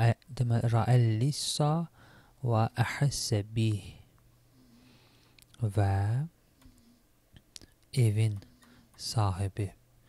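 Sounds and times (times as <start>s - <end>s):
man speaking: 0.0s - 4.1s, 5.6s - 6.4s, 7.9s - 9.8s
faint clicks: 5.2s - 5.6s.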